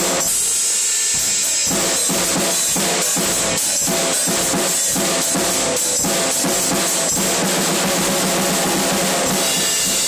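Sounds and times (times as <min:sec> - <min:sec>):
cymbals washing: 0:00.0 - 0:10.0
drum hits: 0:01.2 - 0:10.0.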